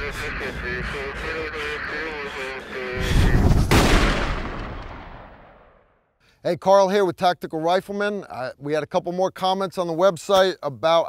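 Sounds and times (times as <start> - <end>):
echoing tail: 0.0 - 6.2
gun blast boom: 3.0 - 6.0
sharp crack: 3.2 - 5.9.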